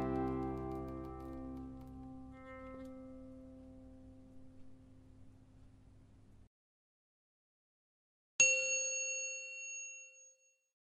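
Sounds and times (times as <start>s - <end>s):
bell-like chime ringing: 8.4s - 10.7s.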